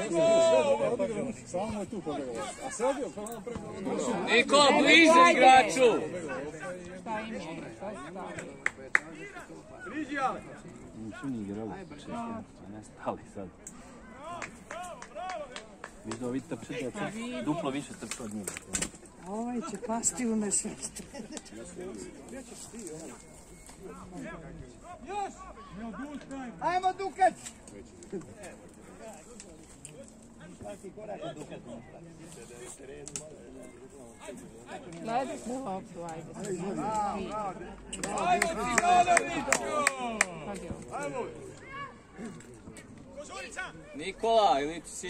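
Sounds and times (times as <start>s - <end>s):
people shouting: 0.0s - 1.0s.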